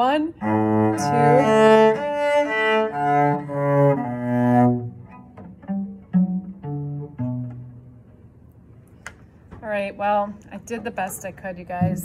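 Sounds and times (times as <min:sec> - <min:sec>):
bowed cello melody: 0:00.0 - 0:08.4.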